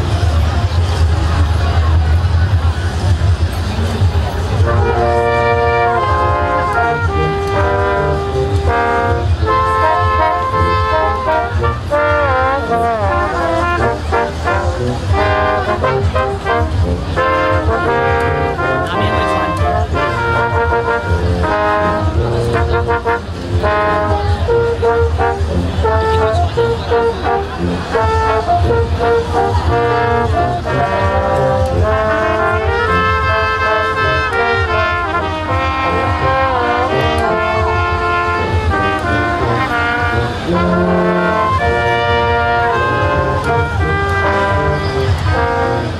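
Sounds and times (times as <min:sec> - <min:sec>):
brass quintet playing: 0:04.6 - 0:45.9.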